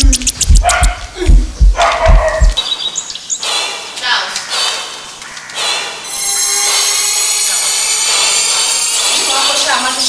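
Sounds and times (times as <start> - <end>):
music beat with deep thuds: 0.0 - 2.6
dog barking: 0.6 - 1.1, 1.7 - 2.6.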